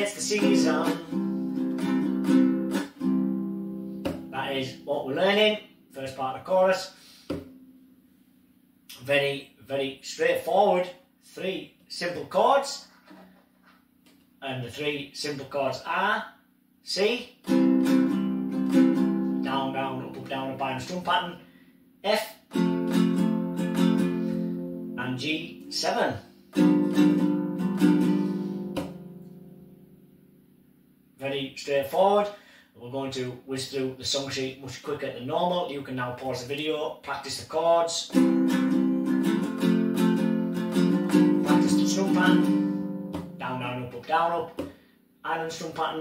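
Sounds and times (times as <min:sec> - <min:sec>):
ukulele strummed: 0:00.0 - 0:05.9, 0:07.1 - 0:07.9, 0:17.4 - 0:21.0, 0:22.5 - 0:30.4, 0:38.0 - 0:44.8
sharp intake of breath: 0:06.9 - 0:07.4, 0:21.4 - 0:21.8, 0:24.0 - 0:24.7, 0:28.0 - 0:28.8, 0:32.3 - 0:32.8, 0:44.7 - 0:45.1.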